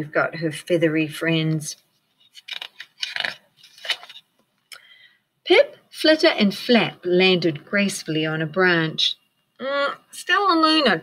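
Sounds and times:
book page turning: 2.0s - 4.5s.

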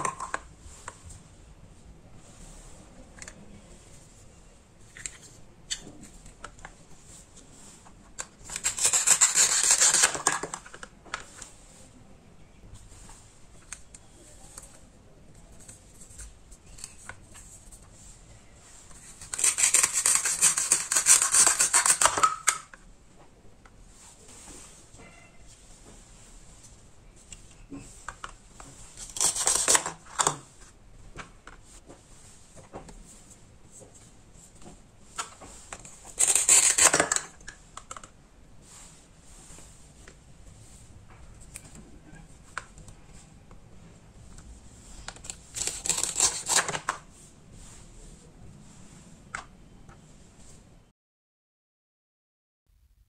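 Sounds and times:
velcro tearing apart: 19.2s - 22.4s, 29.0s - 30.0s, 36.2s - 37.3s, 45.5s - 46.8s.

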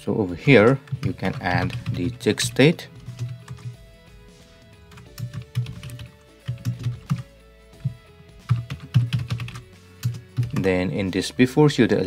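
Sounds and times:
faint background music: 0.0s - 12.0s
computer keyboard typing: 0.7s - 3.8s, 4.9s - 10.7s.

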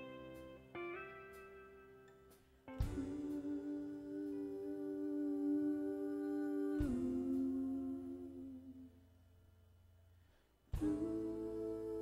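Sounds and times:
live band chords ringing: 0.0s - 3.6s.

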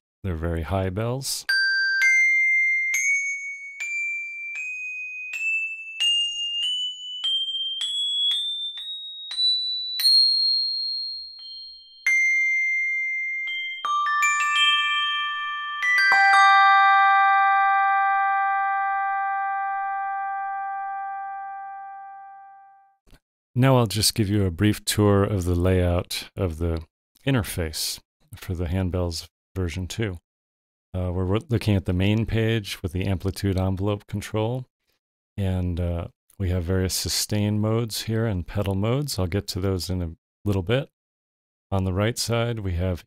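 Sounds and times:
high handbells rising scale: 1.5s - 18.4s
bells struck together ringing: 1.5s - 18.8s.

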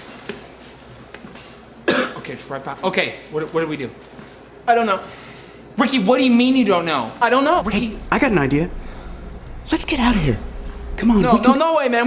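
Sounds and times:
person coughing: 1.9s - 2.2s.

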